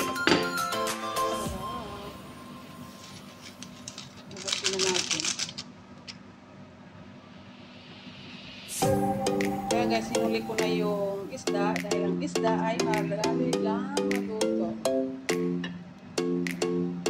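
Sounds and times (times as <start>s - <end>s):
upbeat background music: 0.0s - 3.1s, 8.7s - 17.0s.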